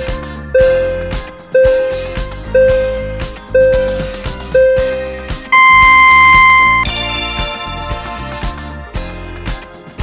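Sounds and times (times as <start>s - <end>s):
background music with steady beat: 0.0s - 10.0s
high electronic beep: 2.6s - 4.0s, 5.6s - 6.9s
cluster of ringing tones: 5.6s - 6.9s.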